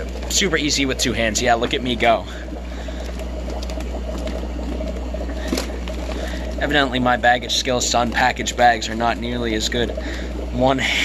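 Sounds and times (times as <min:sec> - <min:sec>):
steady low hum: 0:00.0 - 0:11.0
water sloshing: 0:00.0 - 0:11.0.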